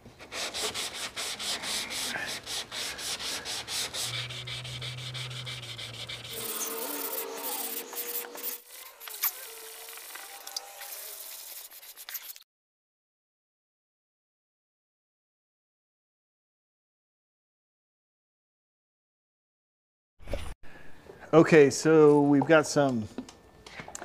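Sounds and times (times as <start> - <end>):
hand sanding strokes: 0.2 - 12.4.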